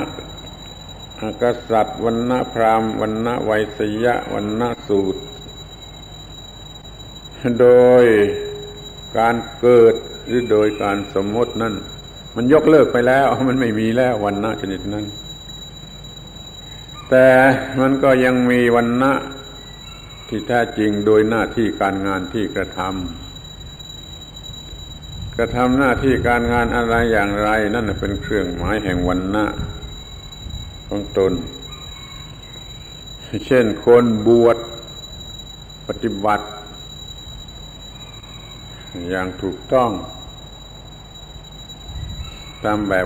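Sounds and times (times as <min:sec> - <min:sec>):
man talking: 0:00.0 - 0:00.2, 0:01.2 - 0:05.3, 0:07.4 - 0:08.6, 0:09.2 - 0:15.2, 0:17.1 - 0:19.4, 0:20.3 - 0:23.2, 0:25.4 - 0:29.8, 0:30.9 - 0:31.6, 0:33.3 - 0:34.8, 0:35.9 - 0:36.7, 0:39.0 - 0:40.1, 0:42.6 - 0:43.0
faint high-pitched whine: 0:00.0 - 0:43.0.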